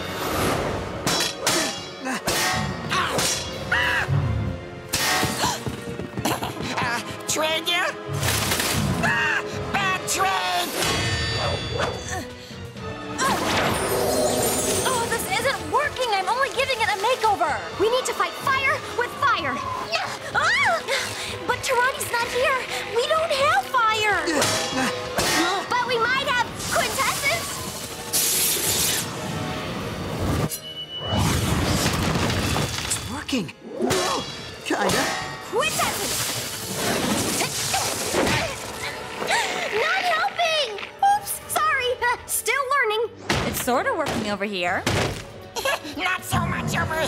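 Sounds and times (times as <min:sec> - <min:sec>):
cartoon soundtrack music: 0:00.0 - 0:32.2, 0:33.3 - 0:39.1.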